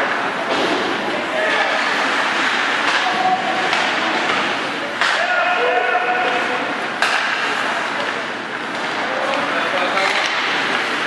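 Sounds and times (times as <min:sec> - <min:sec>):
faint shouts: 0:05.0 - 0:06.5.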